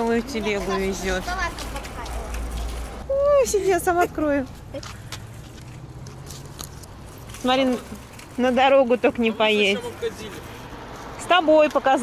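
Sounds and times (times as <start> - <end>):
steady low street rumble: 0.0 - 12.0.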